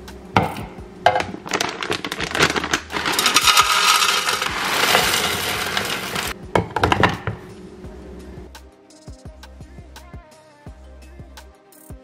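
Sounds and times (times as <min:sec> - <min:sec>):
granules pouring into plastic canister: 0:01.4 - 0:06.4.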